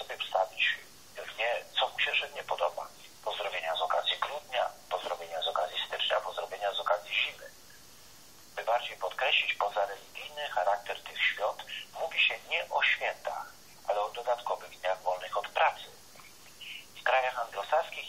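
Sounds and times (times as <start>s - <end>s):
person speaking over telephone: 0.0s - 7.6s, 8.6s - 16.0s, 16.6s - 18.0s.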